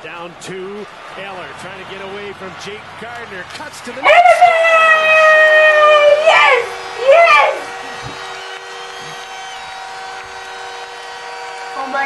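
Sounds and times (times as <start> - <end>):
rising and falling cry: 4.0 - 7.7
woman screaming: 4.0 - 7.7
steady hum: 4.0 - 12.0.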